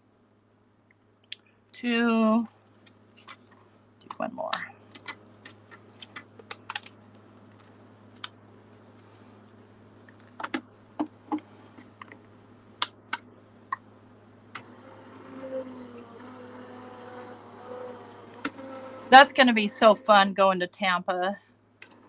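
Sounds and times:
die-cutting machine motor humming: 0:14.6 - 0:20.4.

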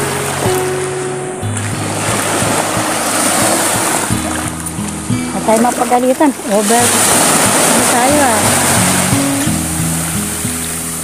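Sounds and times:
background music low notes: 0:00.0 - 0:11.0
waves washing onto beach: 0:00.0 - 0:11.0.

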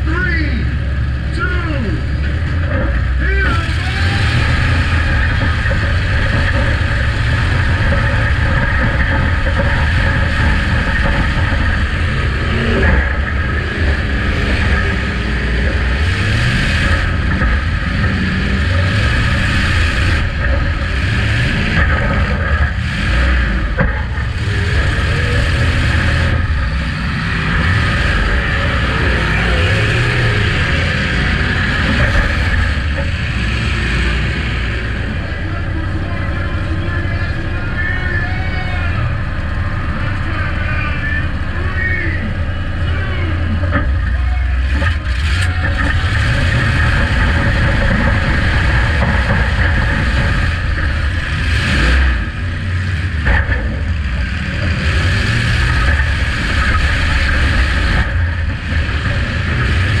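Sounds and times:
car engine revving: 0:00.0 - 1:00.0.

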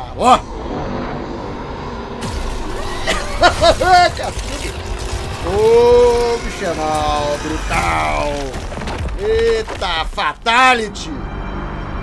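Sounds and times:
action film music: 0:00.0 - 0:12.0
rumbling crash: 0:00.4 - 0:10.6.

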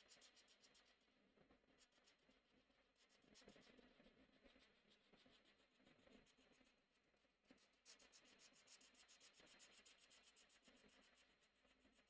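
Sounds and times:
marker scratching on paper: 0:07.6 - 0:12.0.

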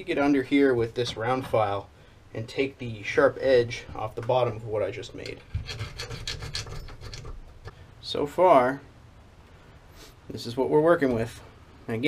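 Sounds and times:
round file rasping on metal: 0:05.5 - 0:07.4.

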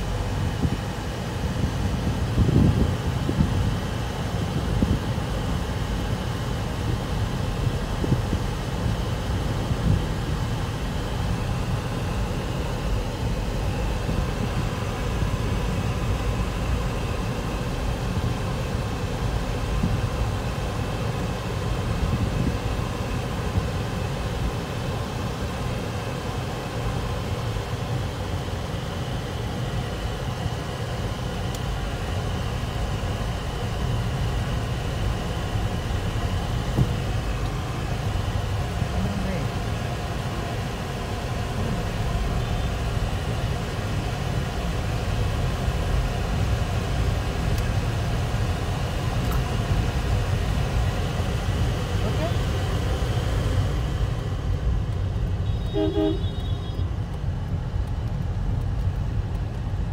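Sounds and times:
engine and tyres rumbling: 0:00.0 - 0:59.9
vehicle horn: 0:55.4 - 0:56.9.

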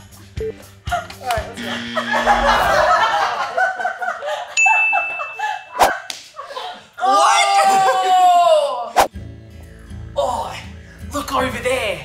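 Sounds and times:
high bell-like ding: 0:04.6 - 0:05.8.

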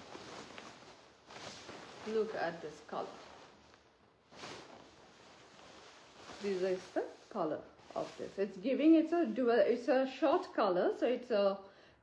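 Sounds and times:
silk fabric swishing: 0:00.0 - 0:10.4.

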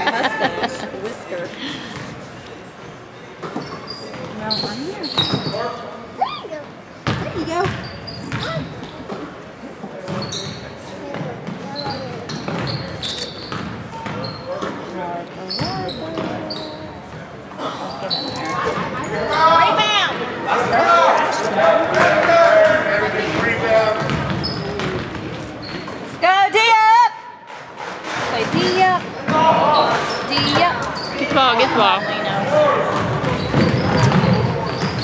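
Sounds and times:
spectators' voices: 0:00.0 - 0:35.0
sneakers squeaking: 0:02.0 - 0:21.5, 0:22.6 - 0:26.2, 0:28.4 - 0:35.0.

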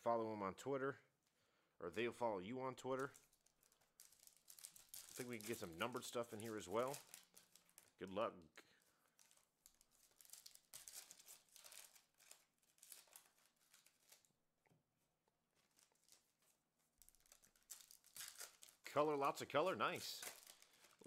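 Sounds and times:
wrappers crinkling and tearing: 0:02.8 - 0:08.1, 0:08.8 - 0:14.4, 0:15.5 - 0:21.0.

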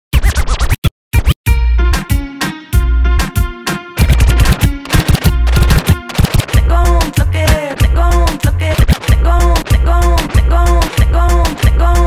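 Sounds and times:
turntable scratching: 0:00.1 - 0:01.4, 0:04.0 - 0:12.0
music track with deep bass: 0:01.2 - 0:12.0.

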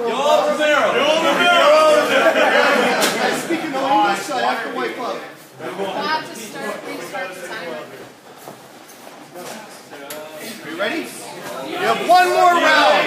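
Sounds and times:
indistinct chatter echoing in hall: 0:00.0 - 0:13.0.

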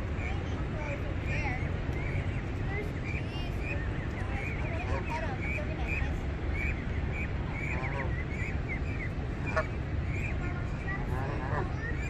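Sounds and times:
churning water rushing: 0:00.0 - 0:12.0
goslings peeping: 0:00.0 - 0:12.0.

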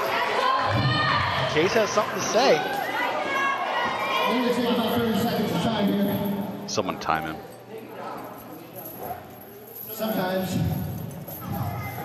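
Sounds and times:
crowd murmur in a hall: 0:00.0 - 0:12.0.

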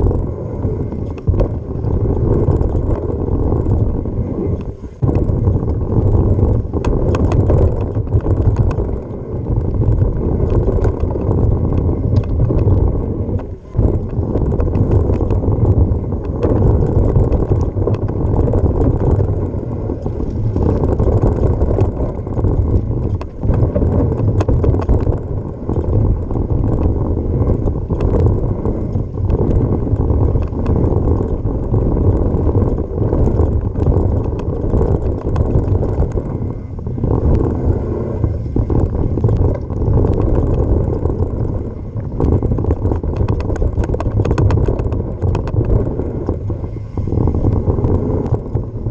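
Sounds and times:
gravel and bike rattles: 0:00.0 - 0:48.9
mountain bike trail rumble: 0:00.0 - 0:48.9
wind buffeting: 0:00.0 - 0:48.9.

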